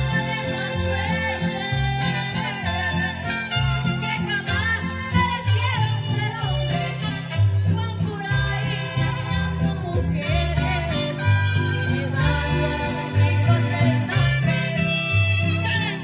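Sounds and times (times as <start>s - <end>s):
woman singing into microphone: 0.0s - 3.3s, 3.9s - 16.0s
backing music with bass line: 0.0s - 16.0s.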